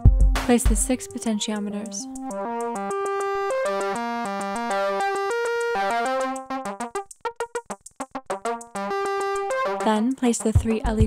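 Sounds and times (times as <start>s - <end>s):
synthesizer sequence: 2.0s - 7.6s
light ticking percussion: 9.8s - 11.0s.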